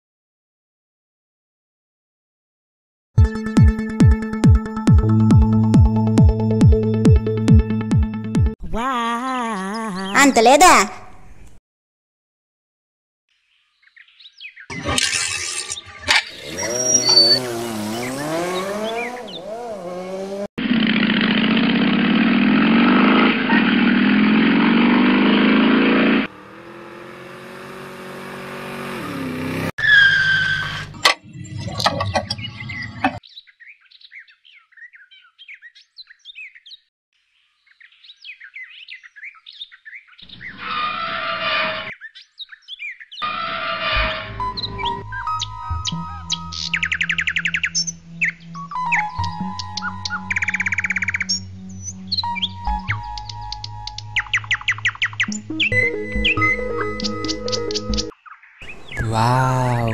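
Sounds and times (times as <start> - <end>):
motorcycle engine revving: 14.7 - 29.8.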